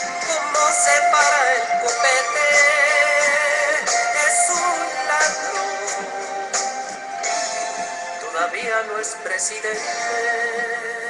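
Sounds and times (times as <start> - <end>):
song with singing voice: 0.0 - 11.0.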